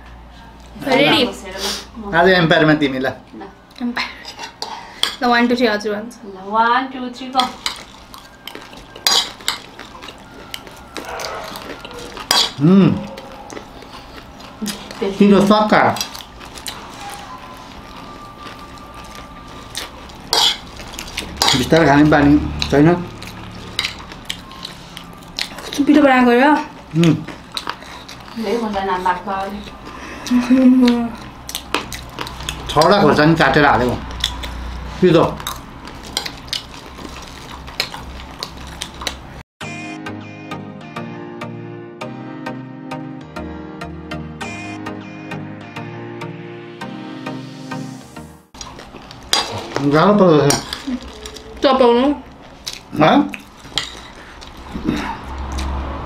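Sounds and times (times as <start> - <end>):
cutlery clinking on plates: 7.4 - 10.0, 11.0 - 12.6, 20.2 - 21.8, 49.3 - 50.9.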